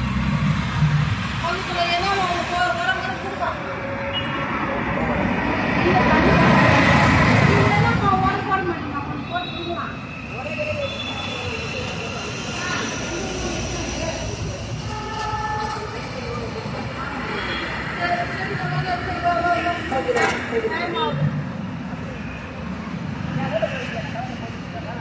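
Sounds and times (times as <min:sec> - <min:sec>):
passing vehicle rumble: 0:00.0 - 0:25.0
indistinct voices: 0:00.6 - 0:25.0.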